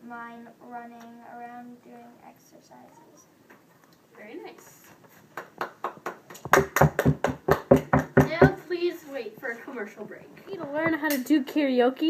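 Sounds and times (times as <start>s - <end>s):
hands clapping: 5.3s - 8.6s.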